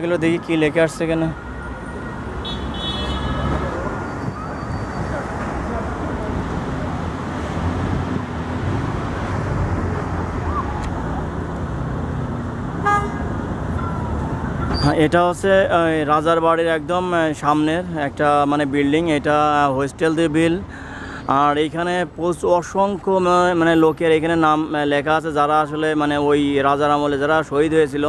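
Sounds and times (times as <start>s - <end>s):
street traffic noise: 0.0s - 28.0s
car horn toot: 2.4s - 3.7s, 12.8s - 14.0s.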